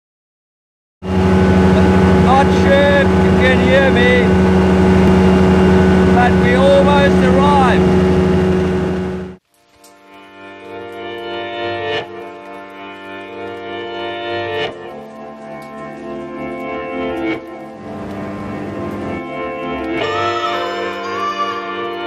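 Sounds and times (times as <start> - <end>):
light aircraft engine running: 1.0 - 9.4, 17.6 - 19.9
person talking: 1.7 - 4.4, 5.8 - 8.2.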